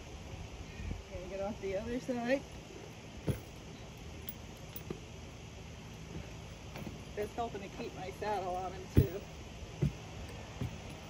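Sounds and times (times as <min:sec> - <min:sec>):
faint outdoor background hiss: 0:00.0 - 0:11.0
dull thump: 0:03.2 - 0:03.6, 0:08.9 - 0:11.0.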